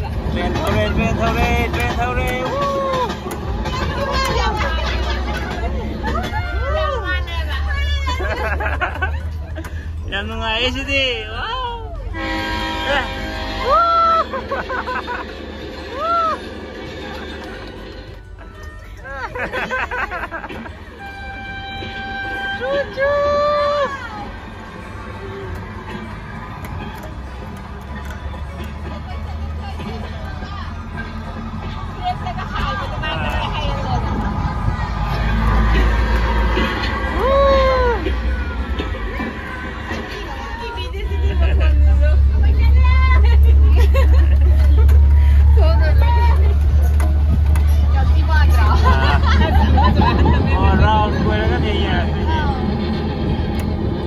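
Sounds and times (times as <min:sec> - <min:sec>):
engine and road rumble: 0:00.0 - 0:54.0
faint music: 0:15.1 - 0:54.0.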